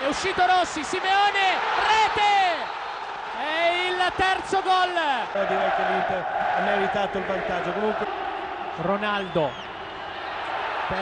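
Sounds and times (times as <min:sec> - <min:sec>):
man shouting excitedly: 0:00.0 - 0:02.7, 0:03.4 - 0:05.3
crowd noise: 0:00.0 - 0:11.0.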